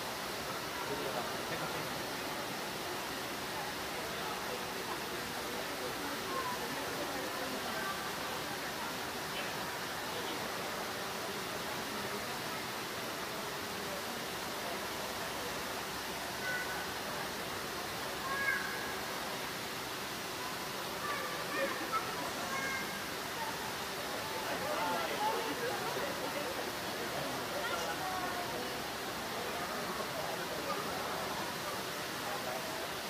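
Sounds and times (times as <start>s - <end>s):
faint voices of people: 0.0s - 33.0s.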